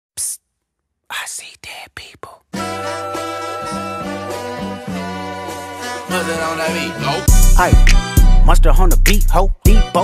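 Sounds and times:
man whispering: 0.2s - 0.4s, 1.1s - 2.5s.

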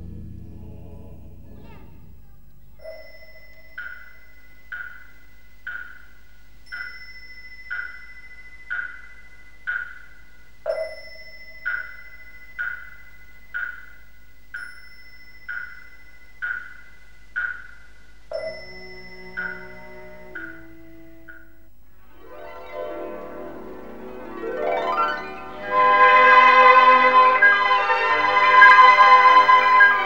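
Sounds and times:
deeper ringing strike: 0.0s - 5.1s
faint steady high tone: 0.0s - 30.0s.

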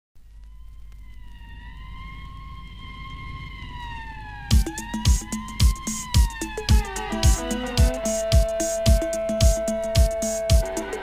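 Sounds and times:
wavering siren-like tone: 0.2s - 11.0s
drum beat with heavy kick: 4.5s - 11.0s.

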